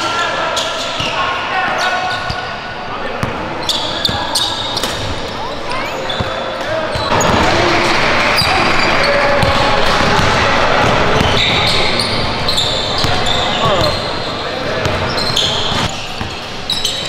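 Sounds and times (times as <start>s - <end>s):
players calling out: 0.0s - 17.0s
sneakers squeaking: 0.0s - 17.0s.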